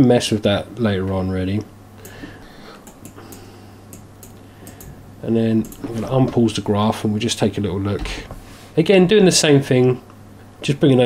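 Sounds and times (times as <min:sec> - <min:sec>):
steady low hum: 0:00.0 - 0:11.0
computer mouse clicking: 0:02.8 - 0:05.0, 0:05.6 - 0:05.9.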